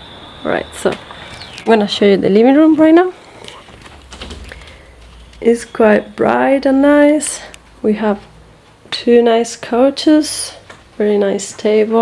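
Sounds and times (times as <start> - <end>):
footsteps: 2.6 - 9.0.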